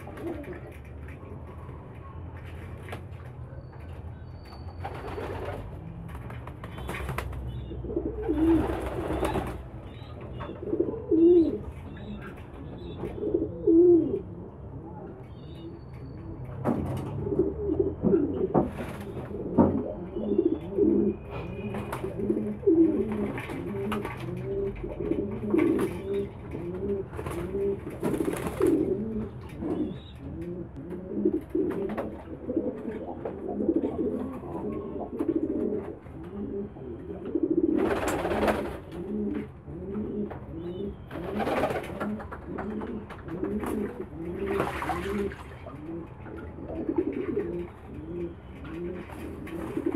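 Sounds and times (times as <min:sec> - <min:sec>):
pigeons cooing: 0:00.0 - 0:01.8, 0:06.8 - 0:49.9
splashing and wing-flapping: 0:21.7 - 0:26.3, 0:27.0 - 0:29.0, 0:41.1 - 0:47.6.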